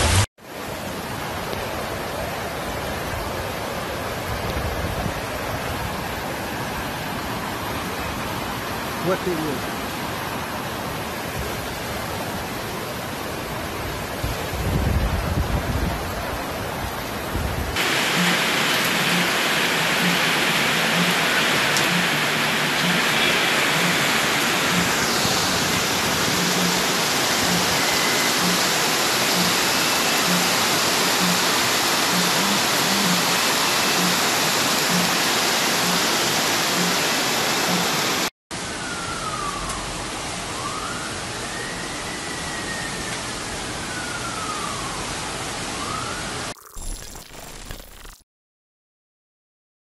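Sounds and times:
rushing floodwater: 0.0s - 38.3s
heavy rain: 0.0s - 45.8s
warning siren: 17.8s - 46.5s.

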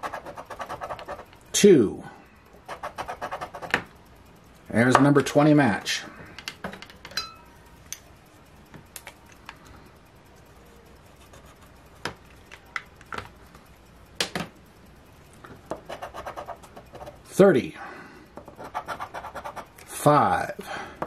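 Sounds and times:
scratcher scratching ticket: 18.6s - 19.8s.

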